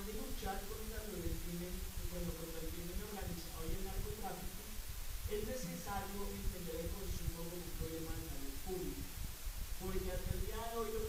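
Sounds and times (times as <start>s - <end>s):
lecturer talking: 0.0s - 11.0s.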